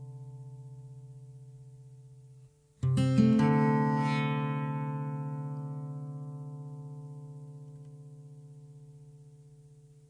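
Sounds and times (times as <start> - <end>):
strummed guitar chord ringing: 2.8 - 9.2.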